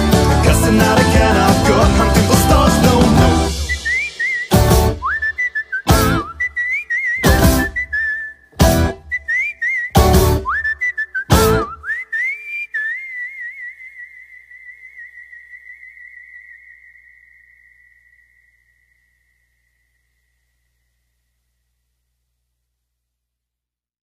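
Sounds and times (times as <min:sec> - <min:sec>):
full-band hits: 0:00.0 - 0:05.1, 0:07.2 - 0:07.8, 0:08.6 - 0:09.0
person whistling a tune: 0:00.0 - 0:19.8.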